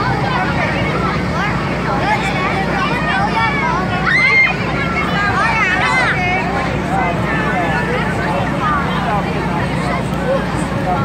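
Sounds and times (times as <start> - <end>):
children chattering and calling: 0.0 - 11.0
low machine hum: 0.0 - 11.0.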